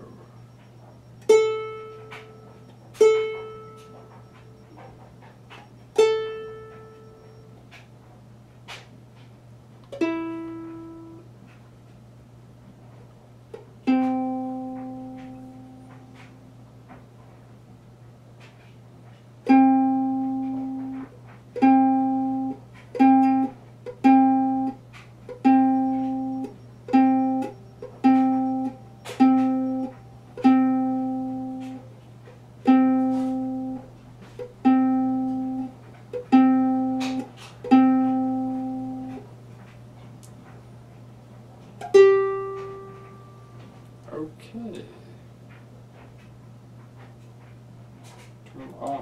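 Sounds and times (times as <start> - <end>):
ukulele string plucked: 1.2 - 4.8, 5.5 - 7.4, 9.9 - 11.2, 13.8 - 16.3, 21.6 - 31.8, 32.6 - 39.2, 41.8 - 43.3.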